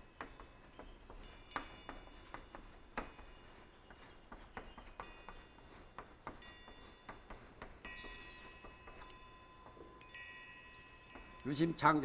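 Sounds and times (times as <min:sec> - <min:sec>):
chalk squeaking on blackboard: 0:00.0 - 0:09.9
high-pitched chalk squeal: 0:00.3 - 0:09.9.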